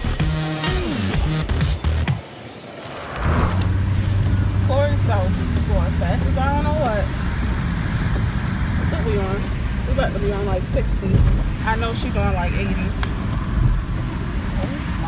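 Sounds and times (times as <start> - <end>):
car driving rumble inside cabin: 3.2 - 15.0.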